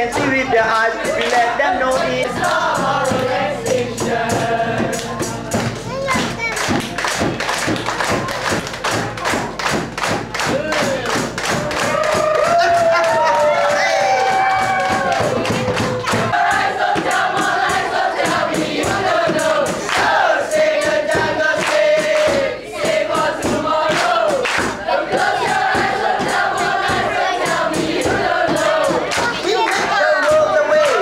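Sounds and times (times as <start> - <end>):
group singing in unison: 0.0 - 5.8, 15.0 - 31.0
hand claps: 1.0 - 1.6, 2.3 - 3.9, 4.9 - 31.0.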